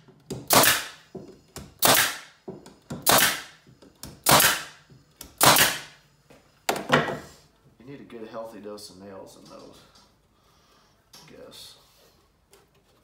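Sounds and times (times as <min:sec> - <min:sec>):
pneumatic nail gun firing: 0:00.4 - 0:01.0, 0:01.7 - 0:02.3, 0:03.0 - 0:03.6, 0:04.2 - 0:06.0.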